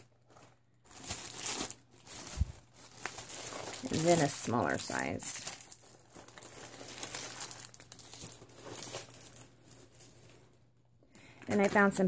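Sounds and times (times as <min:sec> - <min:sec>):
cellophane bags crinkling: 0:00.0 - 0:12.0.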